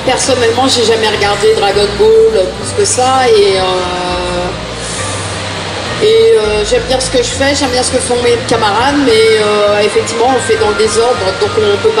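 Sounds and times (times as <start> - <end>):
steady rushing noise: 0.0 - 12.0.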